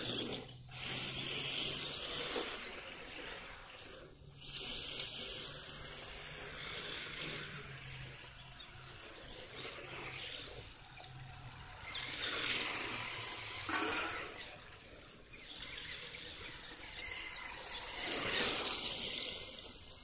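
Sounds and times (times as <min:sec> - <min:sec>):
rc car motor: 0:00.0 - 0:20.0
tyres scrubbing on asphalt: 0:00.0 - 0:20.0.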